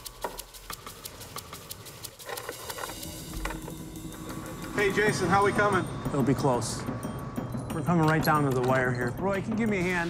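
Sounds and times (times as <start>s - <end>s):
light clicks and ticks: 0.0s - 4.8s.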